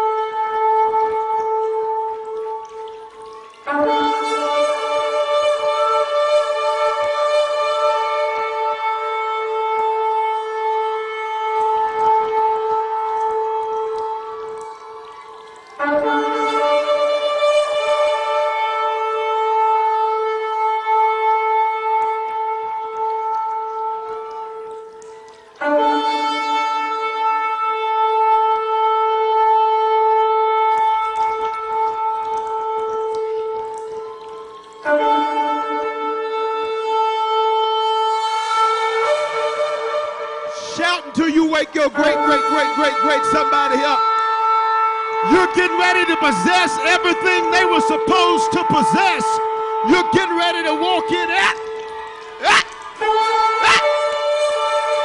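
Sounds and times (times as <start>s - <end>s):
shofar blast: 2.9s - 13.6s, 25.6s - 55.0s.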